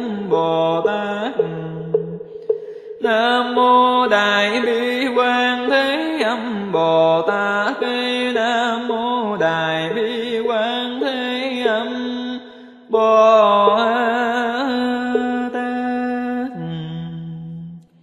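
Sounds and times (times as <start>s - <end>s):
melodic chanting voice: 0.0s - 17.8s.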